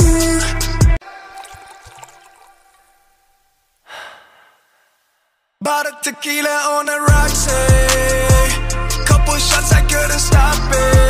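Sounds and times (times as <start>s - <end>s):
background song: 0.0s - 3.0s, 5.6s - 11.0s.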